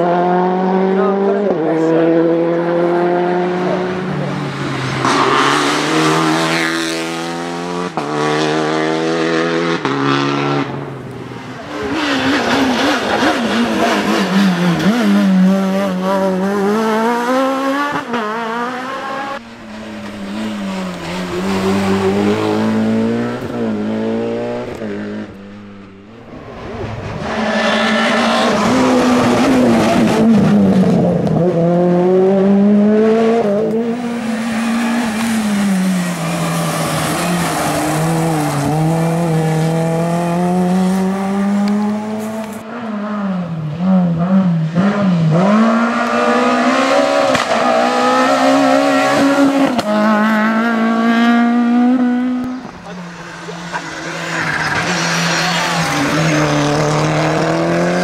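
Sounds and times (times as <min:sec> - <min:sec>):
rally car engines revving past: 0:00.0 - 0:58.0.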